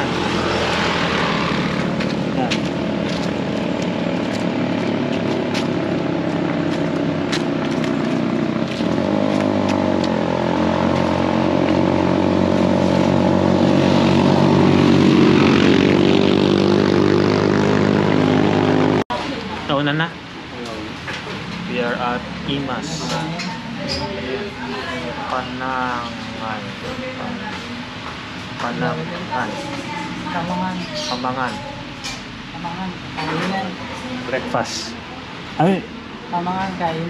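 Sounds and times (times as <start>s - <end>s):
motor drone: 0.0s - 19.0s.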